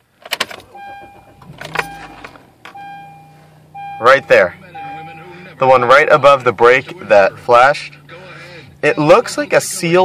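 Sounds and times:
car engine starting and idling: 0.0 - 10.0
dashboard warning chime: 0.6 - 6.9.

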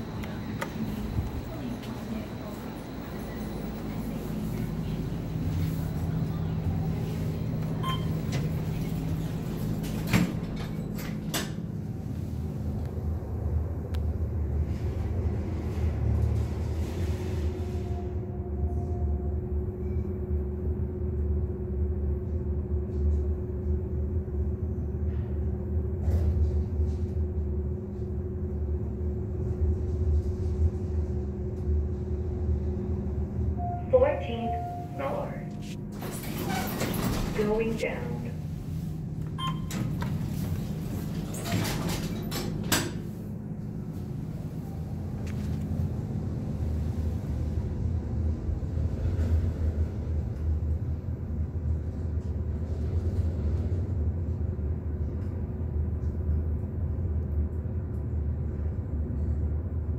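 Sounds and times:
elevator car rumbling upward: 0.0 - 59.9
steady hum: 27.3 - 41.8.

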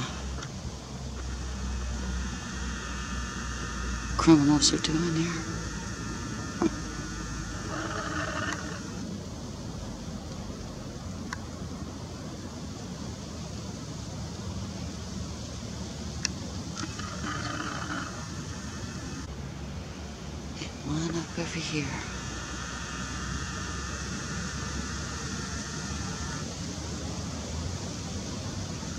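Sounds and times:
outdoor rumble and hiss: 0.0 - 28.9.

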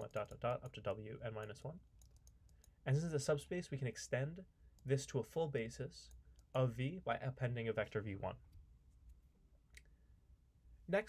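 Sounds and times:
man speaking: 0.0 - 1.9, 2.8 - 8.5
low background noise: 0.0 - 11.0.

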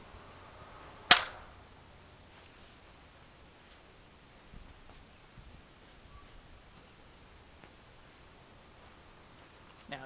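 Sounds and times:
airsoft pistol shot: 1.1 - 1.5.

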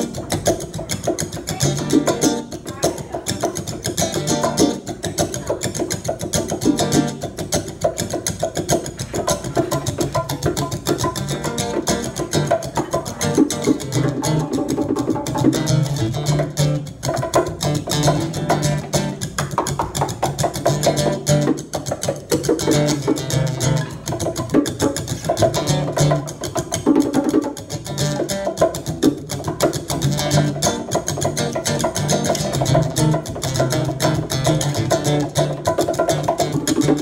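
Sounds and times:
acoustic guitar strumming: 0.0 - 37.0
bongo drums: 0.0 - 37.0.

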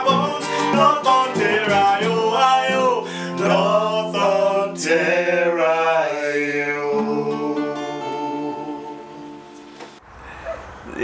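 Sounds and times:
acoustic guitars ringing chord: 0.0 - 10.0.

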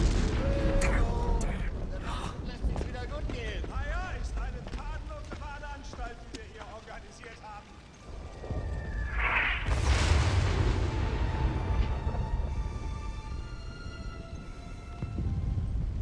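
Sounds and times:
loud explosion with rumble: 0.0 - 3.0, 8.4 - 13.0
distant dialogue: 0.4 - 7.9
falling whistle: 8.4 - 9.7.

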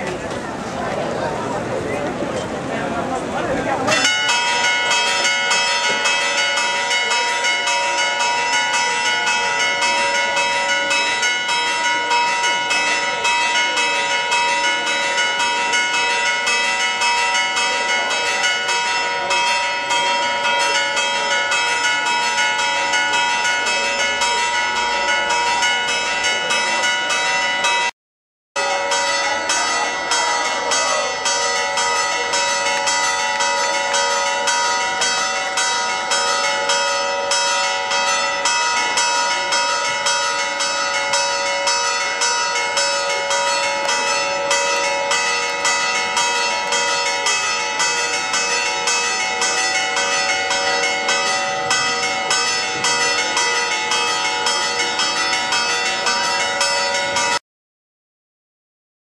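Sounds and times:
church bells pealing: 0.0 - 27.9, 28.6 - 57.4.

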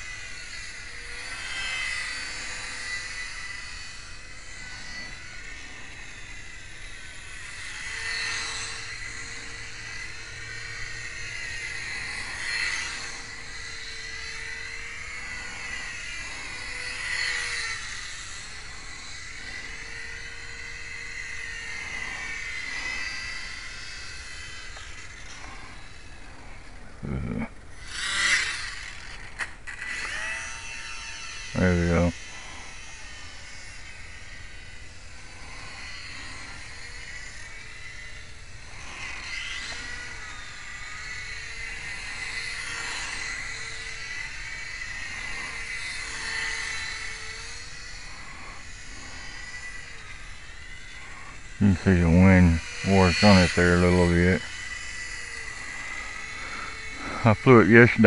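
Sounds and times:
model airplane motor whining: 0.0 - 58.0.

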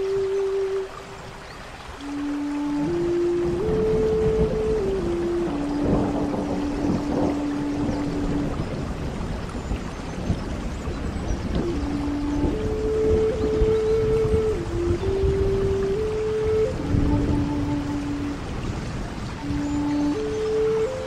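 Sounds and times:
flute playing slow melody: 0.0 - 21.0
rain hiss: 0.0 - 21.0.

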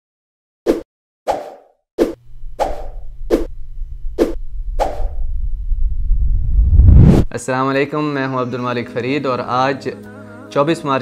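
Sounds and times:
low rumble: 2.2 - 7.3.

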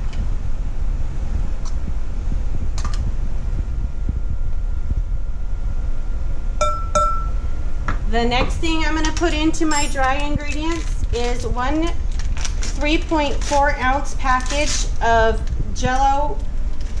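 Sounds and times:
low hum: 0.0 - 17.0
metal spoon clinking on glass bowl: 6.6 - 7.4.

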